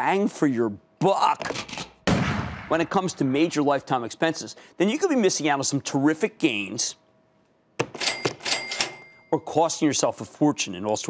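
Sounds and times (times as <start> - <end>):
cash register bell ringing: 8.0 - 9.5.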